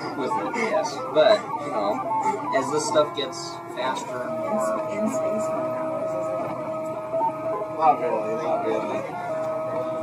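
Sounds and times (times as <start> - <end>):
stepper motors whining: 0.0 - 10.0
voices in room: 0.0 - 10.0.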